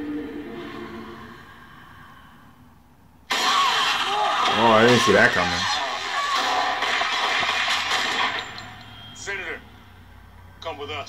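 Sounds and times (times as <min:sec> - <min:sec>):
man speaking: 0:04.6 - 0:05.7.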